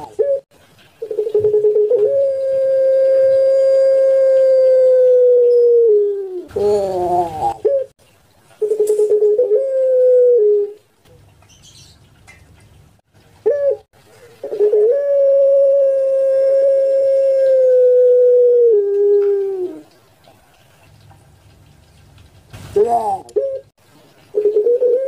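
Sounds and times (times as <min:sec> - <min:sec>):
dove cooing: 0:00.0 - 0:00.4, 0:01.0 - 0:07.9, 0:08.6 - 0:10.8, 0:13.4 - 0:20.0, 0:22.8 - 0:23.7, 0:24.3 - 0:25.0.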